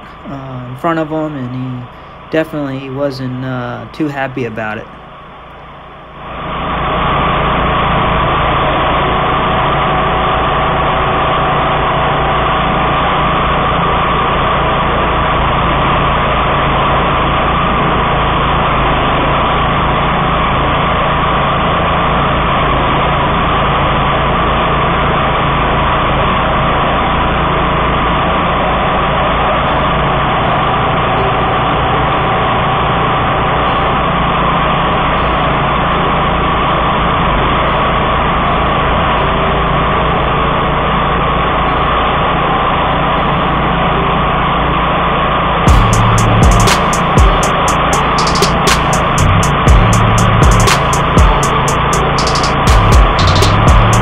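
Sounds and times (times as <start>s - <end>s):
mower engine running: 6.2s - 54.0s.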